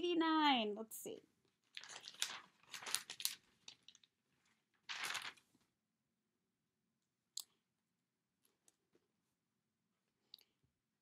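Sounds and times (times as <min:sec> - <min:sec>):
paper rustling: 0:01.6 - 0:05.7.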